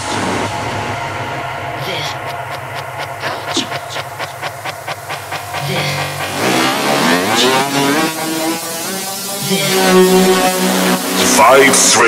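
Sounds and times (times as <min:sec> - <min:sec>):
gliding synth sweep: 0:00.0 - 0:12.0
low held synth note: 0:00.0 - 0:12.0.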